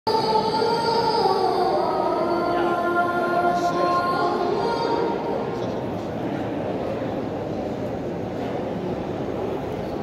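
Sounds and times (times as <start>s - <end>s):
call to prayer over loudspeakers: 0.2s - 5.4s.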